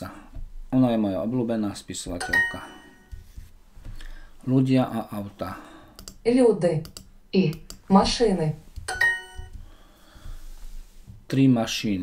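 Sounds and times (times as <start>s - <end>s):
electronic ding chime: 2.2s - 3.1s, 8.9s - 9.5s.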